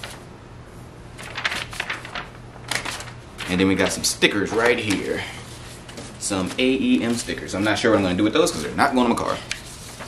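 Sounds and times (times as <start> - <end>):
paper rustling and crinkling: 0.0 - 0.2, 1.2 - 10.0.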